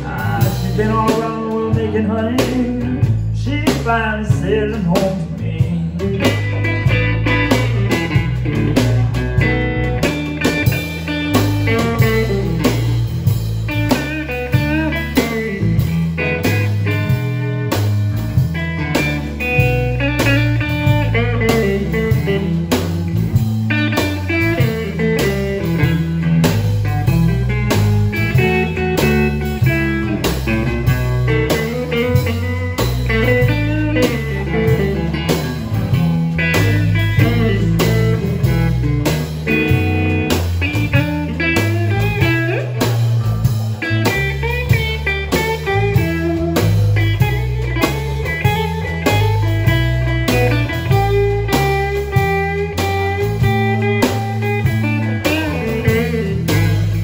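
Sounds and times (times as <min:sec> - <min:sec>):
drums: 0:00.0 - 0:57.0
electric bass: 0:00.0 - 0:57.0
electric guitar lead line: 0:00.0 - 0:57.0.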